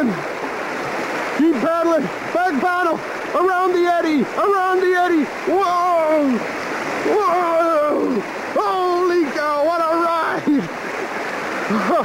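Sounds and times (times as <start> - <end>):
rushing white water: 0.0 - 12.0
person yelling wordless cries: 3.4 - 6.4, 7.0 - 10.7.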